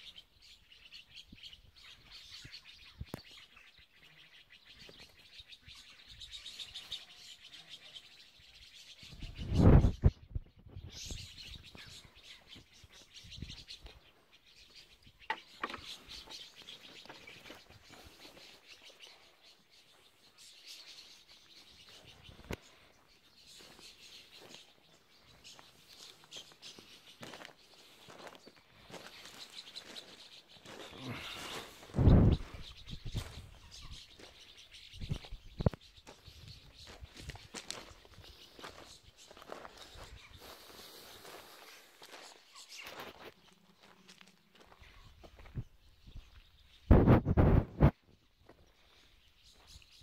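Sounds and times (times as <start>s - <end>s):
birds chirping: 0.0s - 50.0s
footsteps on gravel: 26.0s - 32.0s, 36.0s - 45.6s.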